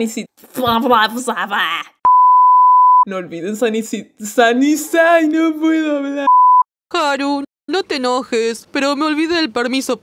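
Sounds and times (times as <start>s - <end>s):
censor bleep tone: 2.1s - 3.1s, 6.3s - 6.7s.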